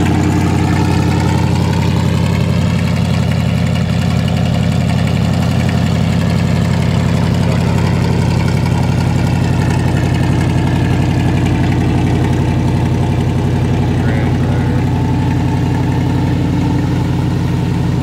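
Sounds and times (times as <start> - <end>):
truck engine idling: 0.0 - 18.0.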